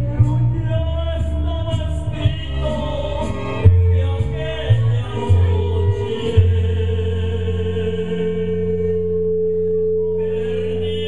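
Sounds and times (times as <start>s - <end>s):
man singing into microphone: 0.0s - 9.3s, 10.0s - 11.0s
backing track sustained chord: 4.9s - 11.0s.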